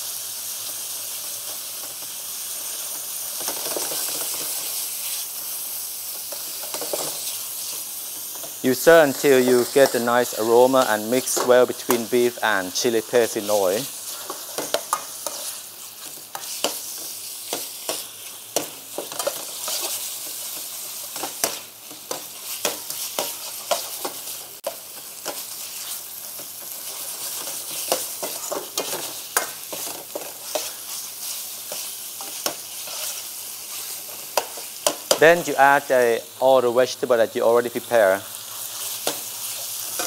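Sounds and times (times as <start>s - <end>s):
food sizzling in a wok: 0.0s - 40.0s.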